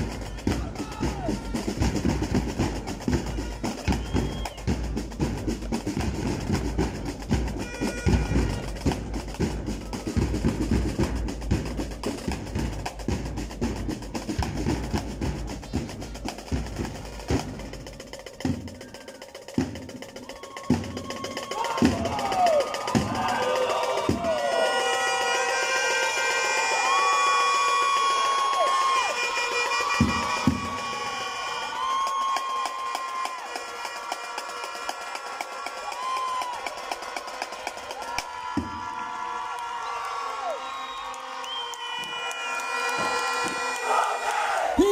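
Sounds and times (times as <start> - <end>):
crowd cheering: 0.0 - 12.7, 18.4 - 44.9
marching snare and bass drum: 0.0 - 39.0, 42.0 - 44.2.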